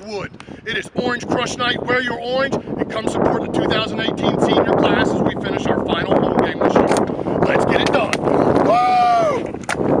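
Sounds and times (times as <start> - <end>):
high whoop dropping in pitch: 8.6 - 9.6.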